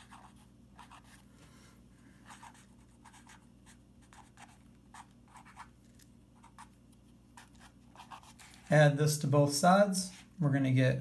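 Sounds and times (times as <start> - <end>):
pen scratching on paper: 0.0 - 1.2, 2.2 - 5.7, 6.4 - 6.8, 7.4 - 8.7.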